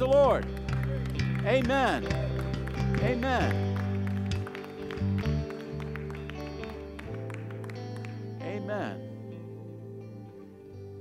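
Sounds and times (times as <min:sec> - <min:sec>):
held keyboard chords: 0:00.0 - 0:11.0.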